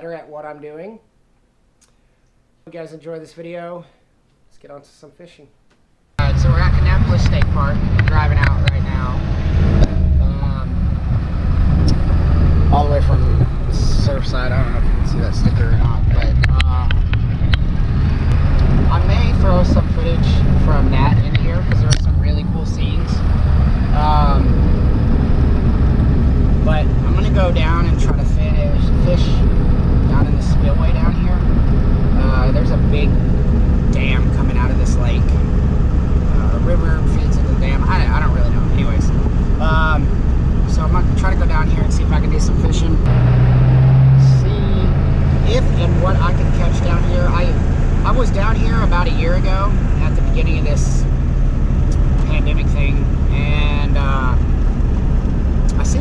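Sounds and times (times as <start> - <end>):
low hum: 6.2 - 56.0
vehicle engine and road noise: 6.2 - 56.0.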